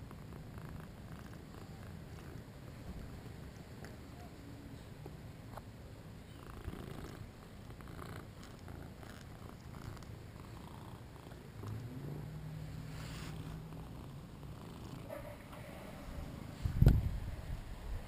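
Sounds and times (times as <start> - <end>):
cat purring: 0.0 - 4.3, 6.2 - 16.6.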